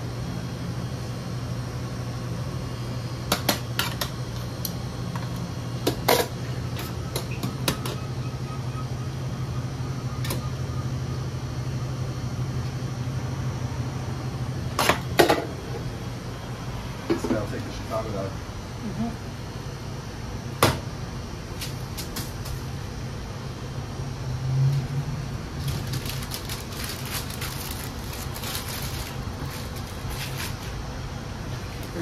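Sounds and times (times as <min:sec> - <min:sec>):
kitchen equipment humming: 0:00.0 - 0:32.0.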